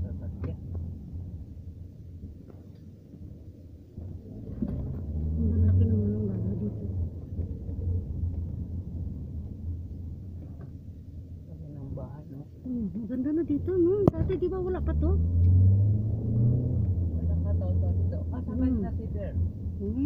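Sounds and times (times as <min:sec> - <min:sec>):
car cabin rumble: 0:00.0 - 0:15.6.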